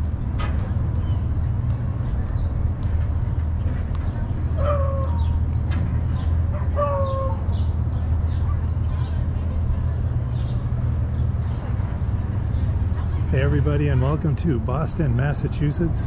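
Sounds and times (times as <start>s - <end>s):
steady low rumble: 0.0s - 16.0s
small birds chirping: 0.6s - 14.2s.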